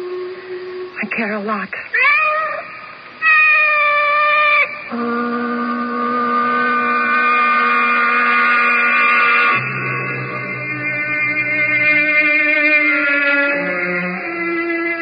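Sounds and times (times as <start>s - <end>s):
sustained music chords: 4.2s - 15.0s.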